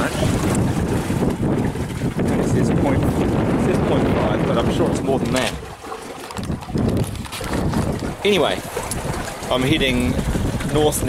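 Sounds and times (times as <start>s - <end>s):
camera handling knocks and rubs: 6.3s - 8.2s.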